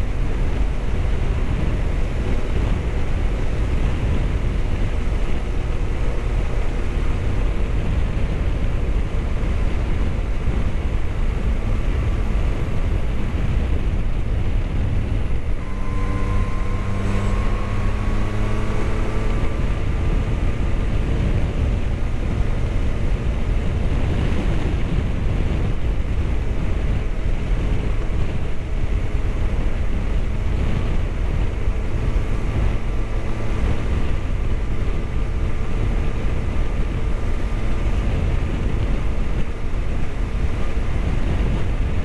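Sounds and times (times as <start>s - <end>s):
motorcycle engine cruising: 0.0s - 42.0s
wind rumble on microphone: 0.0s - 42.0s.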